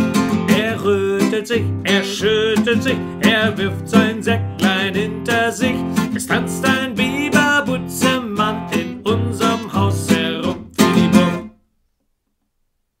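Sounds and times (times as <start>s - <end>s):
classical guitar strumming chords: 0.0s - 11.6s.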